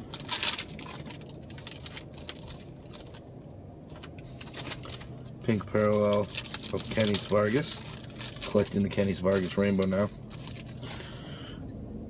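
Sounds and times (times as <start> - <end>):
cards rustling: 3.9 - 11.1.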